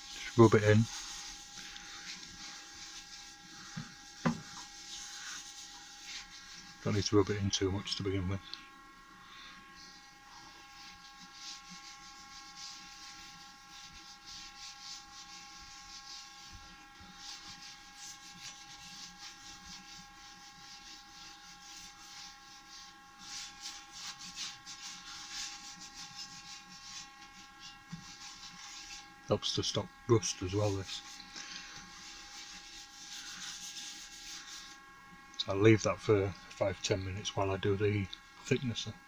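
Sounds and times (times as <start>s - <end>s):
faint machine hum: 0.0s - 39.0s.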